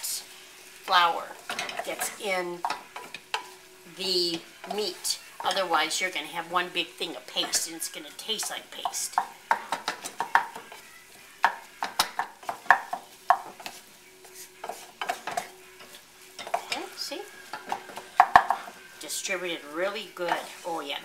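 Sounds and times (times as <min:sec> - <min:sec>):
light sizzle: 0:00.0 - 0:21.0
wooden spoon scraping a skillet: 0:00.0 - 0:21.0
spoon knocking against pan: 0:01.5 - 0:03.6, 0:08.3 - 0:10.8, 0:11.4 - 0:18.8.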